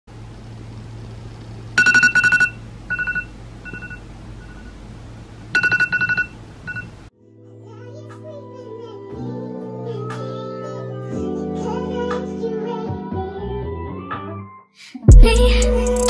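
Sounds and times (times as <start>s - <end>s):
phone alarm beeping: 1.8s - 4.8s, 5.6s - 7.0s.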